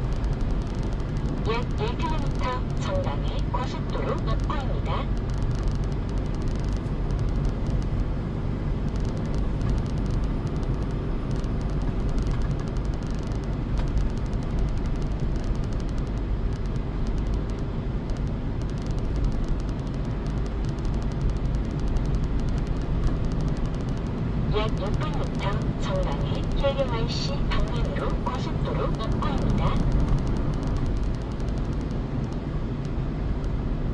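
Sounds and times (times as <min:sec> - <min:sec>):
car road noise and engine hum: 0:00.0 - 0:33.9.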